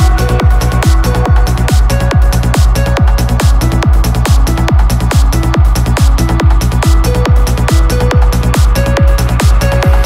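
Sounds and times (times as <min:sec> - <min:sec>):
held synth notes: 0:00.0 - 0:10.0
psytrance music: 0:00.0 - 0:10.0
rolling bassline: 0:00.0 - 0:10.0.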